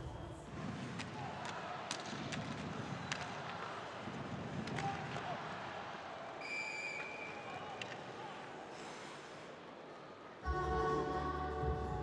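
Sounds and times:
hockey sticks and puck clicking: 0:00.5 - 0:05.5, 0:06.9 - 0:08.2
referee's whistle: 0:06.4 - 0:07.7.

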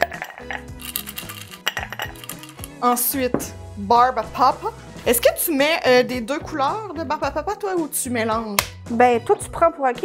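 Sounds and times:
ice cubes clinking in glass: 0:00.0 - 0:02.8
background music: 0:00.0 - 0:10.0.

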